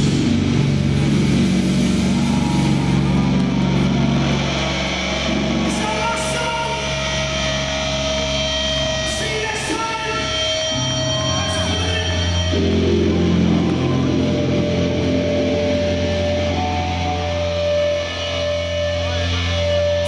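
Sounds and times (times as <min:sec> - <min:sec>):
guitar and bass drone: 0:00.0 - 0:20.0
amplifier feedback ringing: 0:01.7 - 0:20.0.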